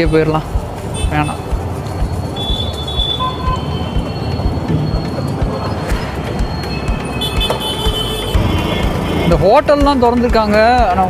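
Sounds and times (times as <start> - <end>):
motorcycle engine: 0.5 - 10.0.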